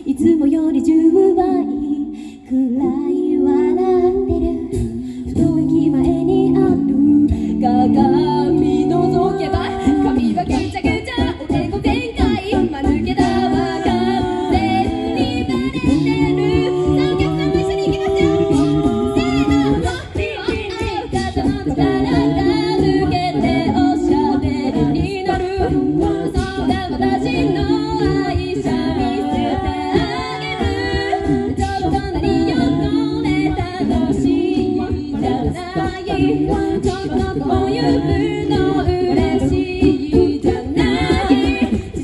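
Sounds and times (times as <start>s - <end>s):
a cappella group singing: 0.0s - 42.0s
vocal percussion beat: 0.0s - 42.0s.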